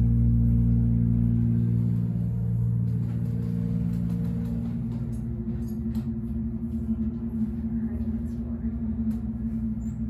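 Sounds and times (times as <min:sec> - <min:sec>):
hydraulic elevator hum: 0:00.0 - 0:10.0.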